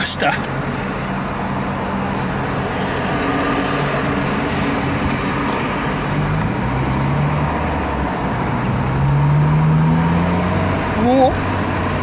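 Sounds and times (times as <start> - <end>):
road noise: 0.0 - 12.0.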